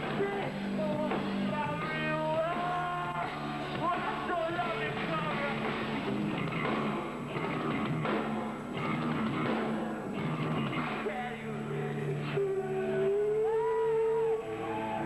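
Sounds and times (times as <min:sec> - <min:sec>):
heavy rock band playing live: 0:00.0 - 0:13.5.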